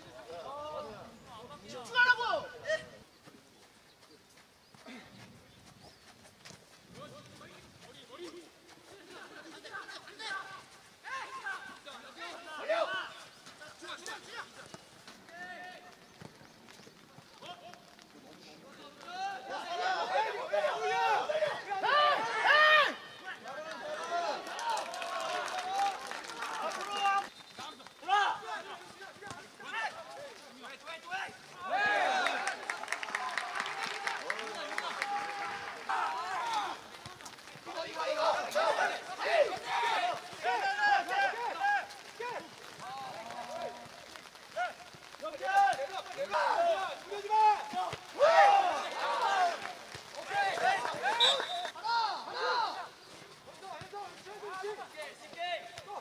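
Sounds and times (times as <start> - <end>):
outdoor background noise: 0.0 - 56.0
people shouting: 9.0 - 13.2, 19.0 - 27.2, 28.0 - 30.3, 31.0 - 53.0.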